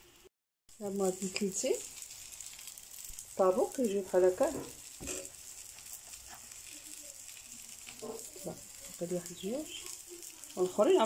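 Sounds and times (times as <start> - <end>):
dough sizzling in frying pan: 0.0 - 11.0.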